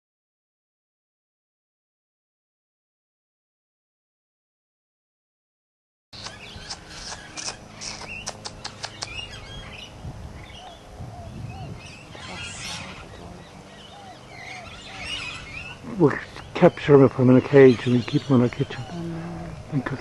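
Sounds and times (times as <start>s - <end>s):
sharp clicks: 6.2s - 9.2s
birds chirping: 6.2s - 20.0s.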